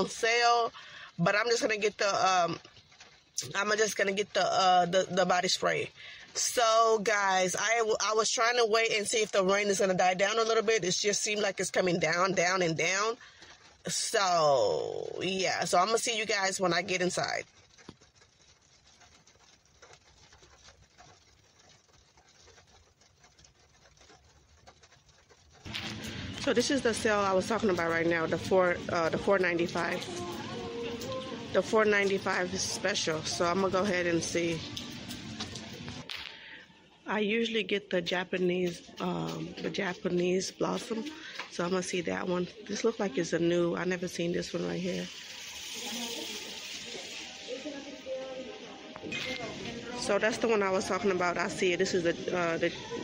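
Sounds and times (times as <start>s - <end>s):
rain pattering on car roof: 0.0s - 53.0s
faint chatter of shoppers: 25.7s - 53.0s
steady hiss: 44.9s - 50.0s.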